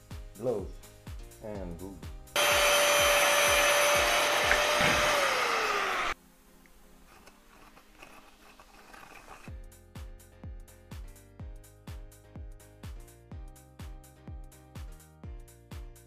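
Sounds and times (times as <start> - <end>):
background music with a beat: 0.0 - 5.2, 9.5 - 16.0
angle grinder cutting steel: 2.4 - 6.2.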